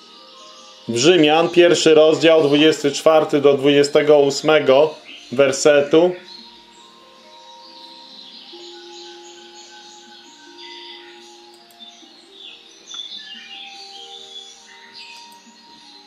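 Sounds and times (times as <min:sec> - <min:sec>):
birds chirping: 0:00.0 - 0:16.0
quiet background music: 0:00.0 - 0:16.0.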